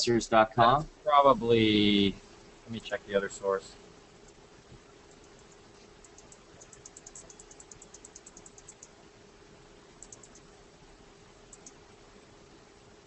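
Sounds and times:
faint steady hum: 0.0 - 13.0
typing on computer keyboard: 5.1 - 9.0, 10.0 - 10.5, 11.5 - 11.8.

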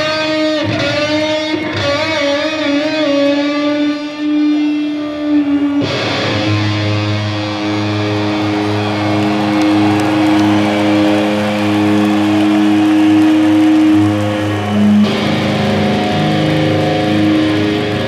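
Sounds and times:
distorted electric guitar solo: 0.0 - 18.0.

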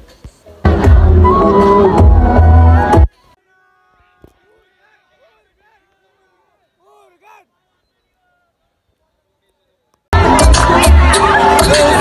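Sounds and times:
loud concert music: 0.6 - 3.1, 10.2 - 12.0
faint voices: 2.8 - 12.0.

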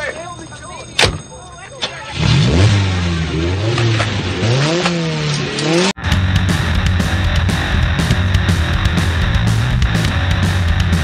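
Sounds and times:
sports car engine revving: 2.2 - 11.0.

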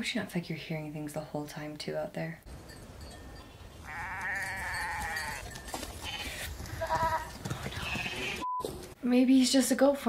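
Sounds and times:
goat bleating: 3.8 - 8.5.

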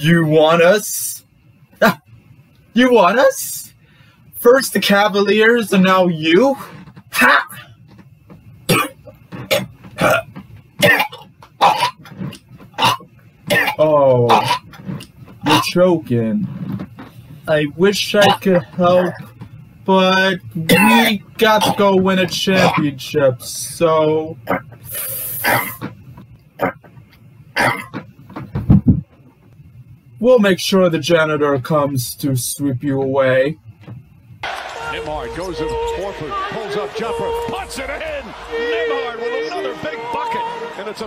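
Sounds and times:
man coughing and gagging: 1.8 - 2.1, 8.7 - 12.1, 12.8 - 14.8, 18.2 - 19.2, 20.6 - 21.9, 22.6 - 23.0, 27.6 - 28.0.

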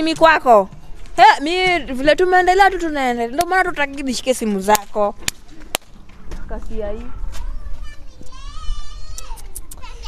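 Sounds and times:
faint background voices: 6.4 - 10.0
children's voices: 6.9 - 10.0.

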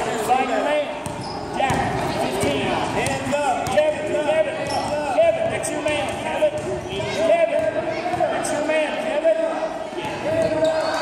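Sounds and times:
sneaker squeaks: 1.0 - 3.9, 4.5 - 5.2, 10.0 - 11.0.

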